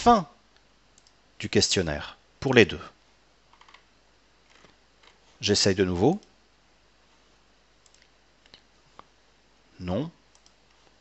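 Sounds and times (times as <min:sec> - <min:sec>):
computer mouse clicks: 0:01.0 - 0:01.2, 0:03.5 - 0:03.9, 0:07.8 - 0:09.1, 0:10.3 - 0:11.0.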